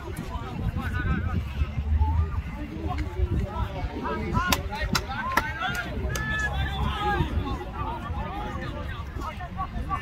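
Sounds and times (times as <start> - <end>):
distant shouting voices: 3.6 - 10.0
sharp claps: 4.4 - 6.5.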